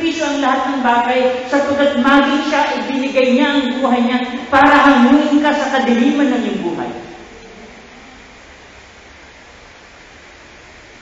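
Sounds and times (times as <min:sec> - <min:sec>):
steady background hiss: 0:00.0 - 0:11.0.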